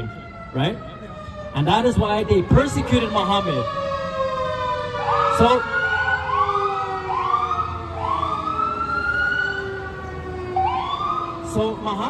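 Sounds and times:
fire truck siren whooping: 0.0s - 12.0s
steady siren tone: 0.0s - 12.0s.

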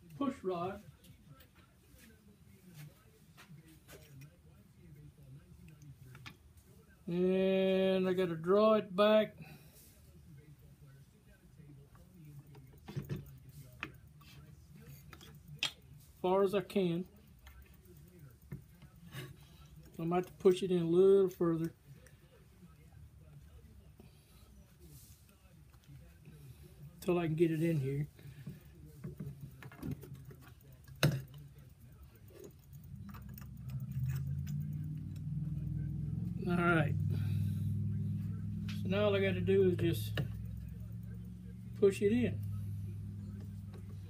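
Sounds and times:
low steady hum: 0.0s - 44.0s
low hum: 31.8s - 44.0s.

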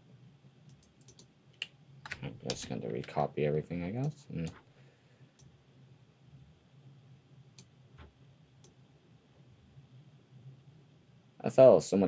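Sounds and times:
keyboard and mouse clicks: 0.7s - 3.2s.

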